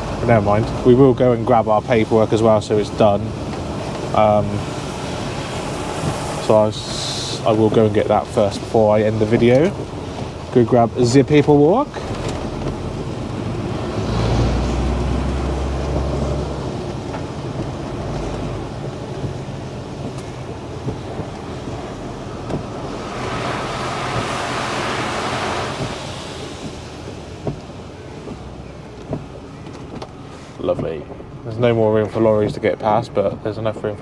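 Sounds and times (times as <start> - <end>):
tyres on wet road: 0.0 - 34.0
passing lorry spray hiss: 4.3 - 7.6, 21.4 - 28.9, 30.2 - 30.7
lorry engine running: 12.0 - 31.4.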